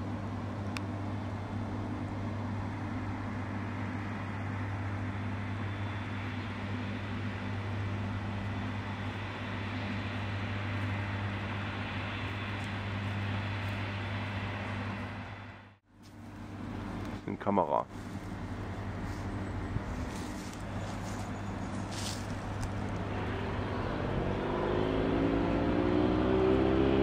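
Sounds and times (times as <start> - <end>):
low hum: 0.0 - 27.0.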